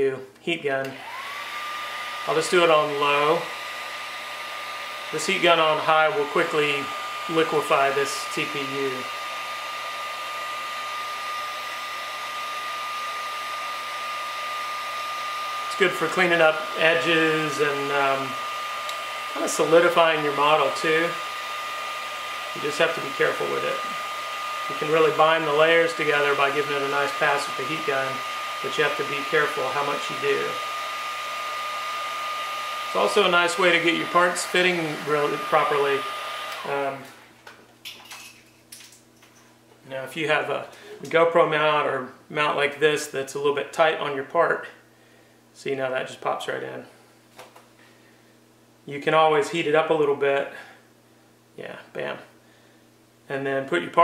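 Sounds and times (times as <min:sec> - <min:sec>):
heat gun blowing with whine: 0:00.8 - 0:37.4.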